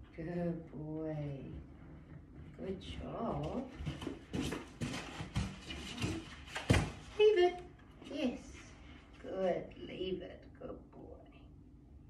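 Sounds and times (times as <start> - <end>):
woman speaking: 0.0 - 1.7, 2.6 - 3.8, 7.1 - 11.5
rubbing scuffs: 3.8 - 7.2.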